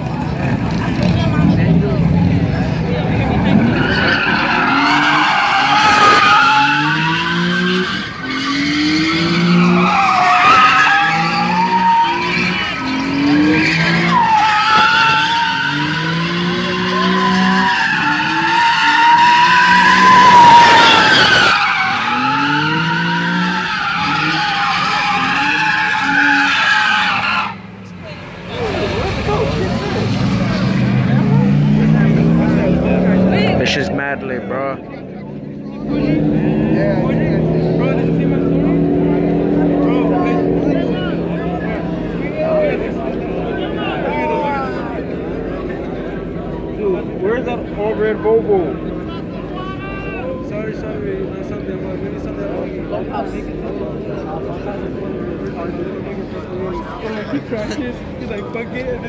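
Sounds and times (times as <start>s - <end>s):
car engine revving: 0.0s - 49.6s
tyres squealing: 3.5s - 27.8s.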